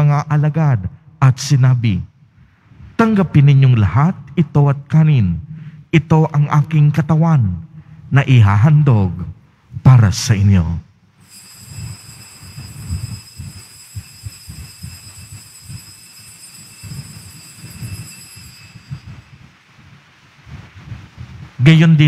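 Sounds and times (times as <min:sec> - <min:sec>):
altar bells ringing: 0:11.2 - 0:19.9
faint low rumble: 0:16.8 - 0:22.0.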